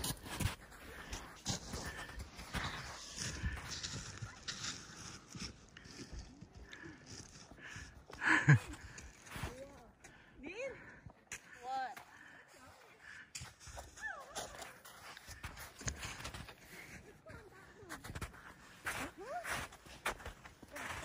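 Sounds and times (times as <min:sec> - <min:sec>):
footsteps crunching in snow: 0:00.0 - 0:09.9, 0:11.4 - 0:21.0.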